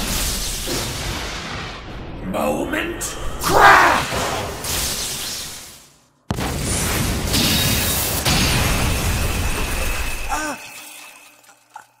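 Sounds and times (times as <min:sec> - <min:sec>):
thin ringing tone: 0:10.0 - 0:12.0.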